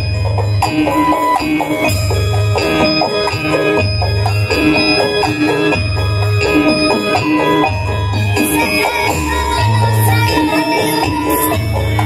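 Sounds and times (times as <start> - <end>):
loud amplified live music: 0.0 - 12.0.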